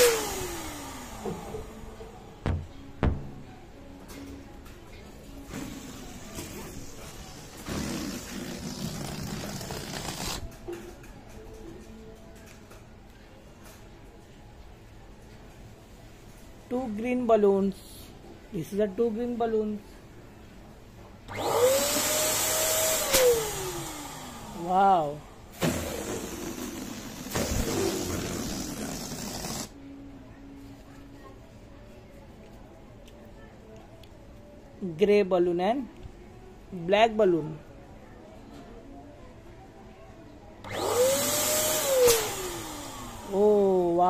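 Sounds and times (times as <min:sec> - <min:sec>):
electric balloon pump whirring: 0:00.0 - 0:03.4, 0:05.5 - 0:10.6, 0:21.3 - 0:24.8, 0:25.5 - 0:29.8, 0:40.6 - 0:43.8
balloon deflating: 0:05.6 - 0:10.4, 0:25.6 - 0:29.8.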